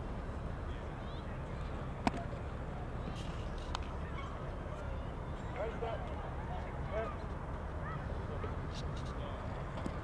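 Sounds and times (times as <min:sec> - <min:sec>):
steady outdoor background: 0:00.0 - 0:10.0.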